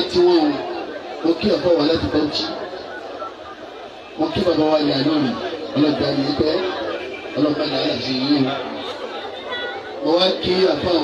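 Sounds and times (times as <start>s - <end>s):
man speaking over a microphone: 0.0s - 2.9s, 4.1s - 11.0s
people chattering: 0.0s - 11.0s.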